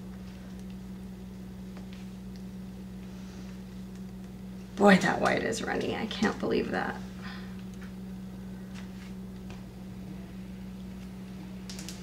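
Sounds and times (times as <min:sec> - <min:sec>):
low room tone hum: 0:00.0 - 0:12.0.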